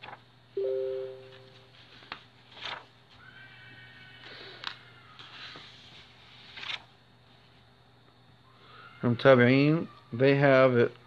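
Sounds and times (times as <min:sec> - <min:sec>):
two-pitch ringing tone: 0:00.6 - 0:01.7.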